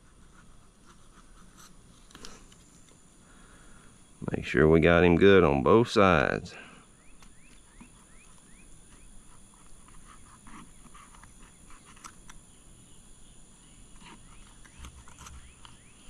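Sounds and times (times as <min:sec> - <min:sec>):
bird chirping: 0:06.5 - 0:09.7, 0:10.4 - 0:16.0.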